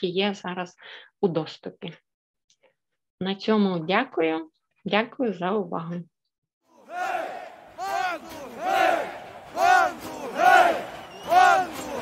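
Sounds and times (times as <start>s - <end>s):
crowd chanting in unison: 6.7s - 12.0s.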